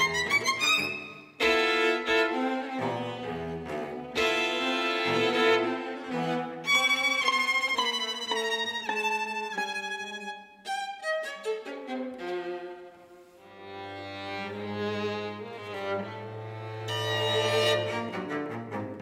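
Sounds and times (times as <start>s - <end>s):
string quartet playing: 0.0s - 19.0s.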